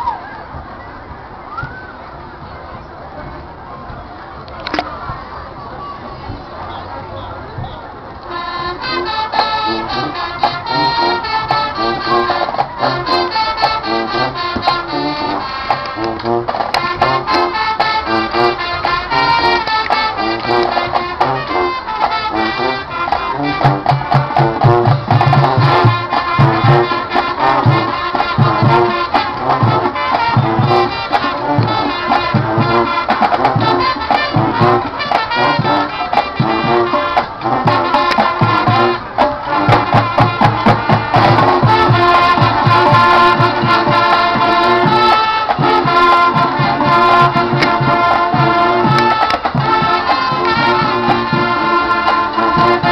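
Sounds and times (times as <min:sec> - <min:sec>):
brass playing melody: 0:08.2 - 0:52.9
marching drum beat: 0:08.8 - 0:52.9.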